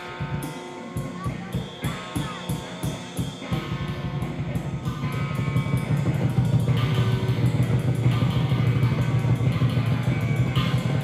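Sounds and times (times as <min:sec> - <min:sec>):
guitar: 0:00.0 - 0:11.0
heavy low end: 0:02.9 - 0:11.0.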